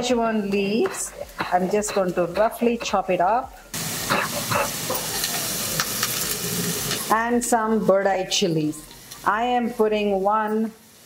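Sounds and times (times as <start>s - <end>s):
onions sizzling in a pan: 0.0s - 11.0s.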